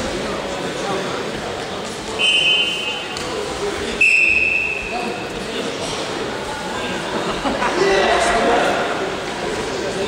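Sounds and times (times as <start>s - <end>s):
referee's whistle blasts: 2.2s - 3.1s, 4.0s - 5.0s.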